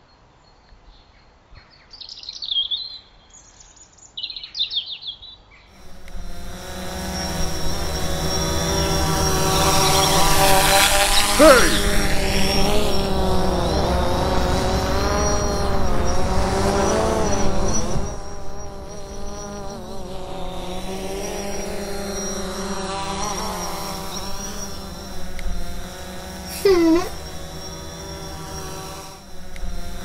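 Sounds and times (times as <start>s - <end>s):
drone motors whirring: 5.8s - 30.0s.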